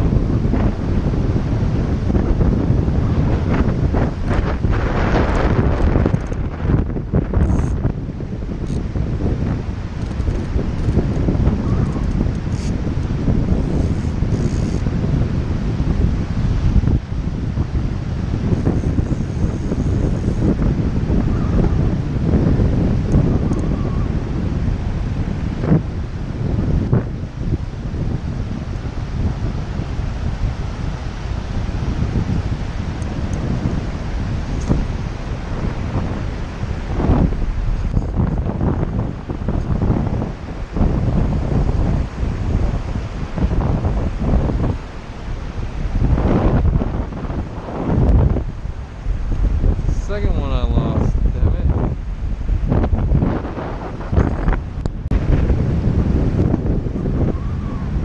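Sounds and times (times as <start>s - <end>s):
river current rushing: 0.0s - 58.0s
wind buffeting microphone: 0.0s - 58.0s.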